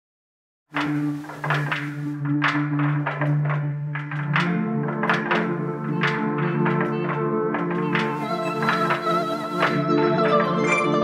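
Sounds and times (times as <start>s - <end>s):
plucked notes: 0.8s - 11.0s.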